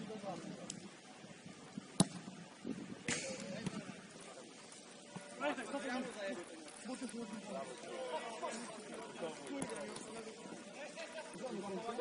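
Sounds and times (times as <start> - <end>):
football kick thump: 2.0 - 2.3.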